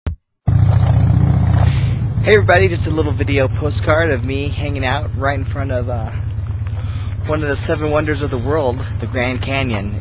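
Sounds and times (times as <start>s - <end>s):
low outdoor background rumble: 0.5s - 10.0s.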